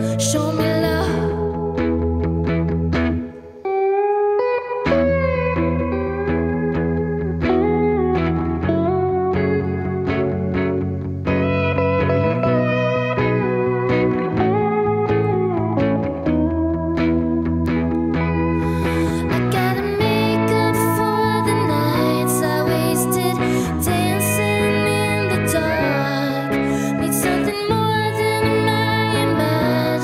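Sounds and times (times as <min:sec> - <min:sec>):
low musical backing: 0:00.0 - 0:30.0
pedal steel guitar solo: 0:00.0 - 0:30.0.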